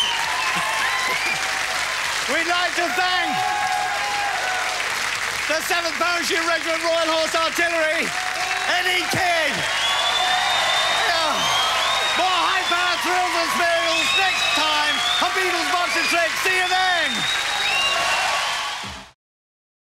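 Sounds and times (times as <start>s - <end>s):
voices cheering and shouting: 0.0s - 4.9s, 5.6s - 19.0s
audience applauding: 0.0s - 19.2s.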